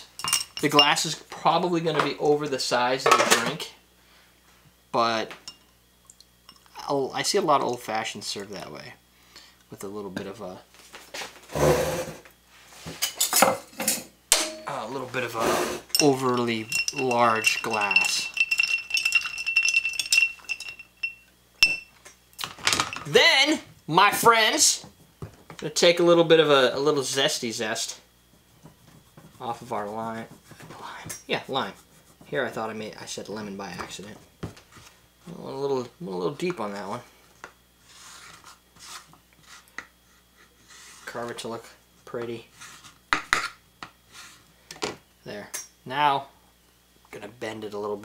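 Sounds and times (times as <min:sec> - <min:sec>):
spoon stirring ice in glass: 0:15.9 - 0:21.8
sharp glass clink: 0:16.0 - 0:21.9
knife scraping cutting board: 0:37.8 - 0:39.8.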